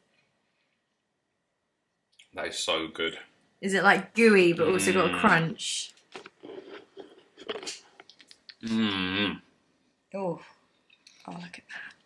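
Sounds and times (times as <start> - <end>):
cookie crunching: 6.0 - 8.6
soft mouth chewing noises: 6.0 - 8.8, 10.7 - 12.0.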